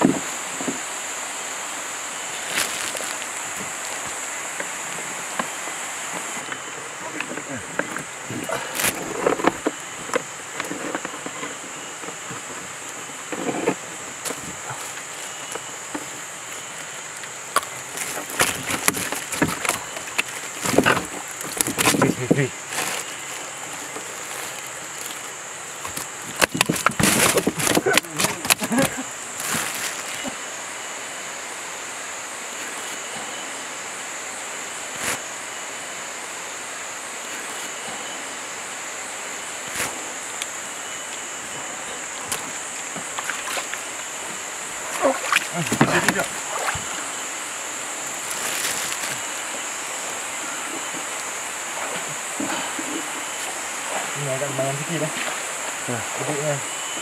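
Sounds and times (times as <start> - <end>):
high-pitched insect drone: 0.0 - 57.0.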